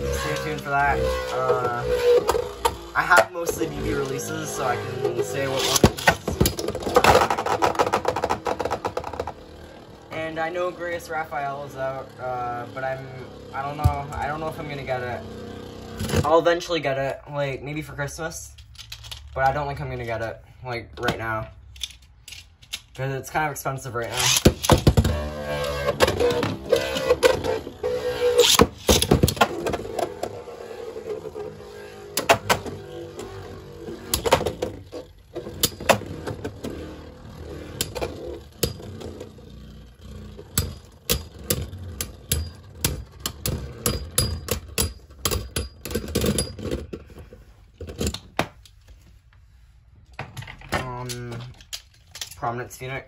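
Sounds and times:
spinning top whirring: 0:00.0 - 0:16.3, 0:24.1 - 0:44.3.

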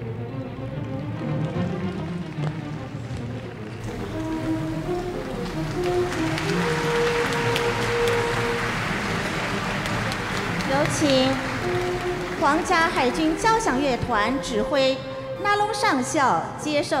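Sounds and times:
orchestral music: 0:00.0 - 0:17.0
audience applause: 0:00.7 - 0:14.5.

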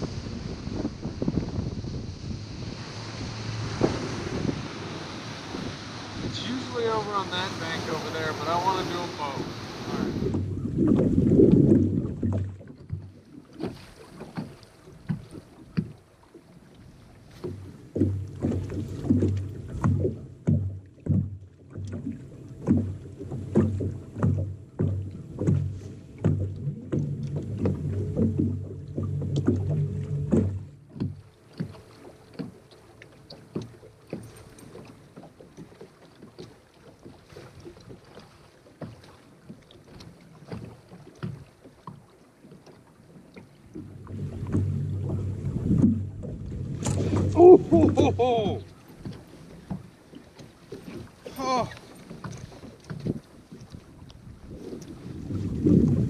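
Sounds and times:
small waves slapping a boat hull: 0:00.0 - 0:56.0
electric trolling motor humming: 0:00.8 - 0:10.7, 0:22.3 - 0:35.2.

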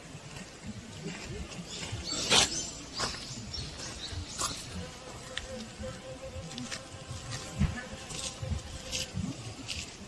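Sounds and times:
honeybee buzzing: 0:00.8 - 0:10.0.

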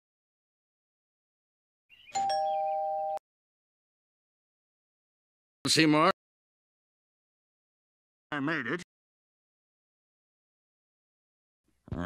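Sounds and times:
two-note doorbell chime: 0:02.2 - 0:03.2.

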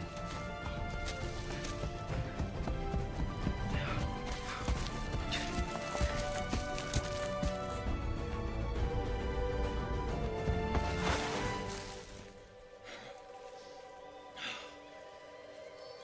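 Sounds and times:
bare feet running: 0:00.0 - 0:08.0
orchestral film score: 0:00.0 - 0:16.0.

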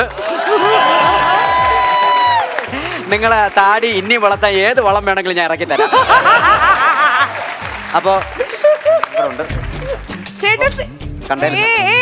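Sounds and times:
background music: 0:00.0 - 0:12.0
man's voice: 0:11.2 - 0:12.0.

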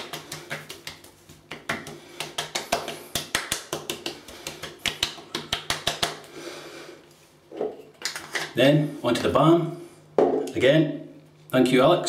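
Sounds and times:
hands slapping cheeks: 0:00.0 - 0:06.4.

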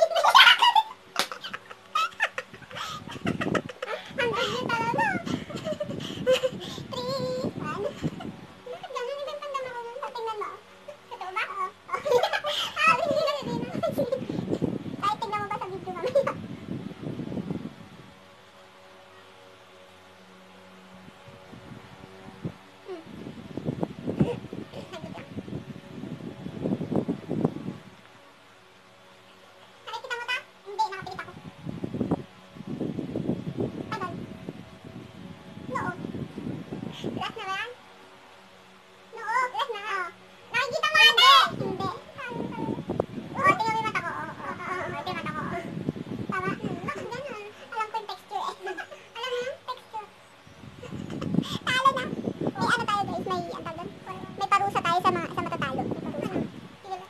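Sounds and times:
stifled giggling and laughter: 0:00.0 - 0:06.6.

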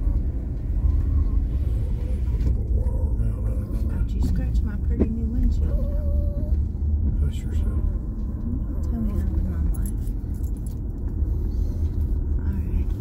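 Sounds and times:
car interior rumble: 0:00.0 - 0:13.0.

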